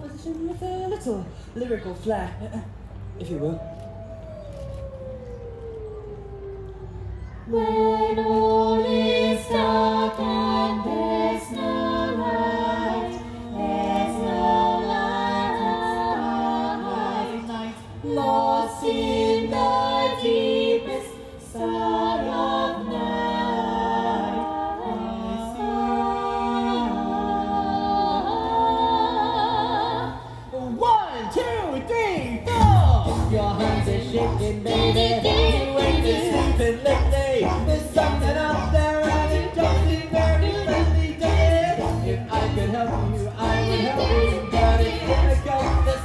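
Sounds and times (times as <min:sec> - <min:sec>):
a cappella singing in harmony: 0:07.5 - 0:30.6, 0:32.5 - 0:46.0.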